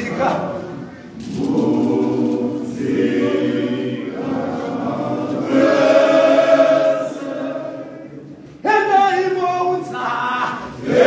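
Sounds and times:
men's choir singing in harmony: 0.2s - 8.5s, 10.6s - 11.0s.

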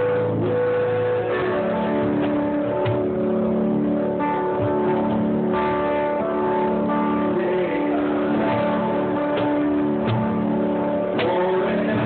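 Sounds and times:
acoustic guitar chords: 0.0s - 12.0s
cajon played by hand: 8.5s - 10.5s, 11.1s - 12.0s.

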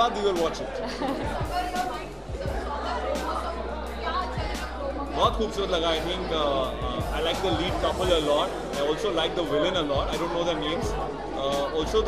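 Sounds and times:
background music: 0.0s - 12.0s
voices chattering: 0.0s - 12.0s.

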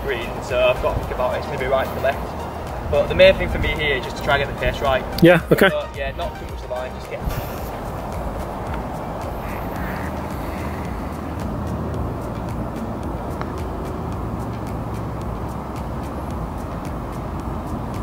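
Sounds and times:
wind buffeting microphone: 0.0s - 5.2s, 6.0s - 18.0s.

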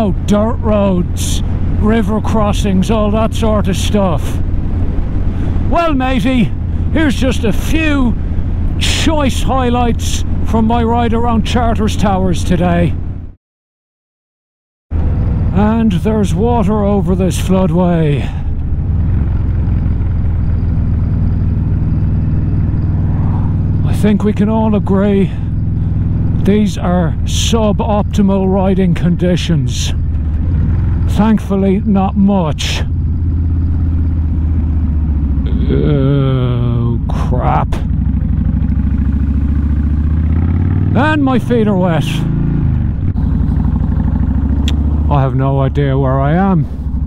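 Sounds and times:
motorcycle engine cruising: 0.0s - 13.4s, 14.9s - 47.0s.

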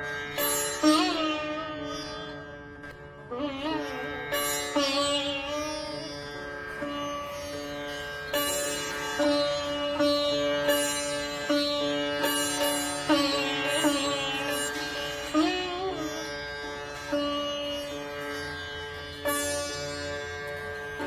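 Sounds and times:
sitar playing slow melody: 0.0s - 21.0s.

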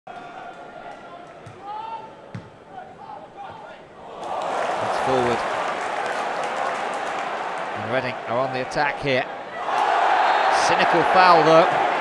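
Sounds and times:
stadium crowd: 0.1s - 12.0s.

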